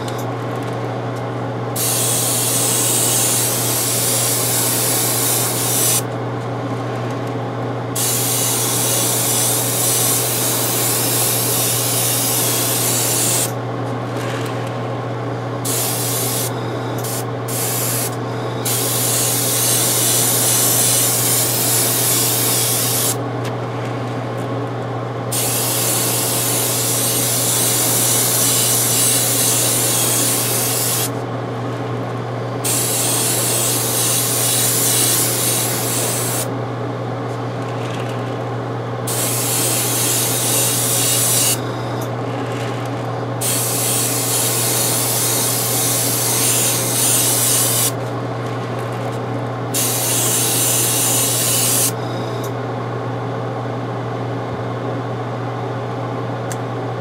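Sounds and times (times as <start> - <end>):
steady low hum: 0.0 - 57.0
spray paint hissing: 1.8 - 6.0, 8.0 - 13.5, 15.7 - 23.2, 25.3 - 31.2, 32.6 - 36.5, 39.1 - 41.6, 43.4 - 48.0, 49.7 - 52.0.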